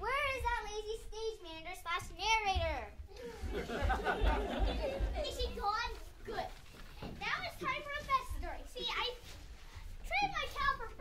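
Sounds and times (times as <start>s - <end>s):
child speaking: 0.0s - 3.2s, 5.0s - 9.4s, 10.0s - 11.0s.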